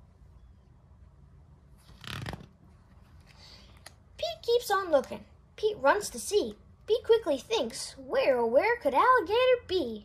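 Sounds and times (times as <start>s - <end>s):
book page turning: 1.8s - 3.9s.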